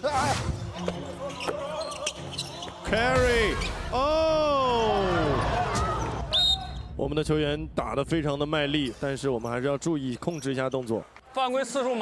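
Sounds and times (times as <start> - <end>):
crowd noise: 0.7 - 7.0
shoe squeak: 1.2 - 2.8, 10.2 - 10.7.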